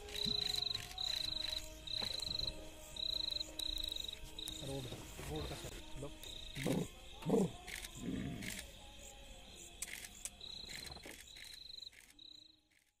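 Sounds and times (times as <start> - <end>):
scattered clicks: 0.0 - 1.7, 9.8 - 12.9
crickets trilling: 0.0 - 12.6.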